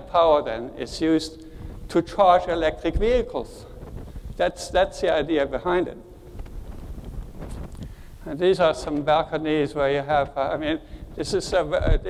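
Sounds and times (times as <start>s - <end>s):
low rumble of microphone noise: 0.0s - 12.0s
faint rustles: 6.1s - 8.3s.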